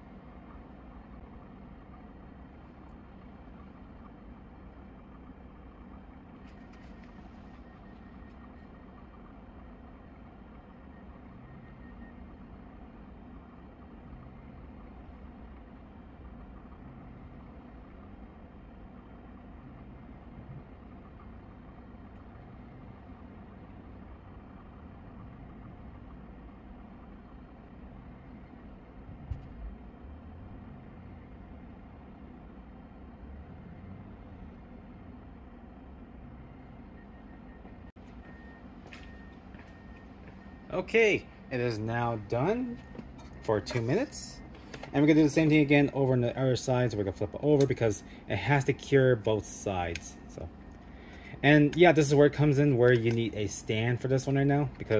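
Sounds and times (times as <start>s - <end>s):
turntable motor humming: 0.0s - 54.9s.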